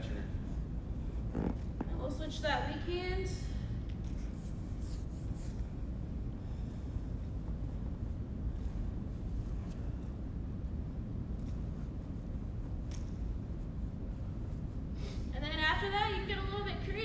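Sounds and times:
low room rumble: 0:00.0 - 0:17.0.

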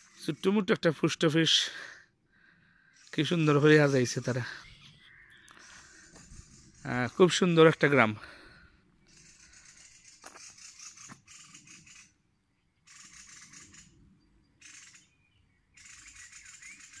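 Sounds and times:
faint bird chirps: 0:02.7 - 0:07.8, 0:08.5 - 0:17.0.

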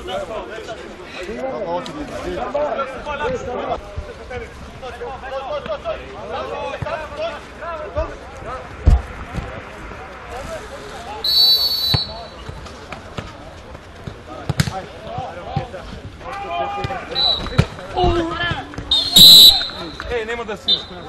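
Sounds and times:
shrill whistle blast: 0:11.2 - 0:12.4, 0:17.1 - 0:17.6, 0:18.9 - 0:20.0
players shouting: 0:16.2 - 0:21.0.

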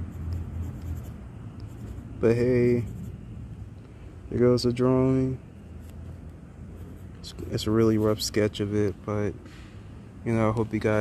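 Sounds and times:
pencil scratching on paper: 0:00.0 - 0:02.1, 0:02.7 - 0:03.2, 0:06.8 - 0:08.2
low steady hum: 0:00.0 - 0:11.0.

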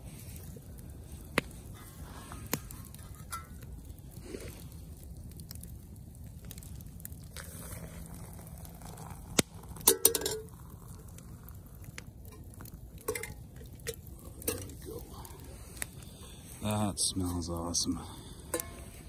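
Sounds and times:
metal pot and mug clinking: 0:03.2 - 0:03.6, 0:09.8 - 0:10.8, 0:13.0 - 0:14.8, 0:18.5 - 0:19.0
water pouring into mug: 0:07.4 - 0:11.5.

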